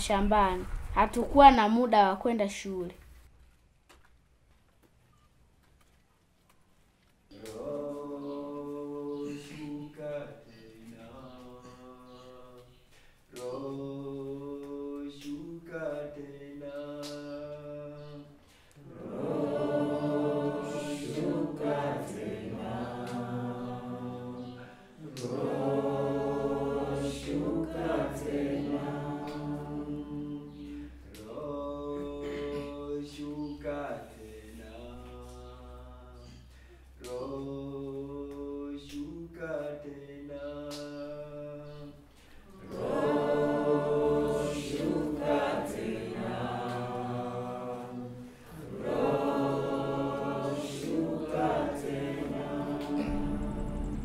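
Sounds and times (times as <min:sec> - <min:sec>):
choral music with held chords: 0:07.3 - 0:54.0
choir singing long notes: 0:07.4 - 0:12.8, 0:13.4 - 0:36.4, 0:37.0 - 0:54.0.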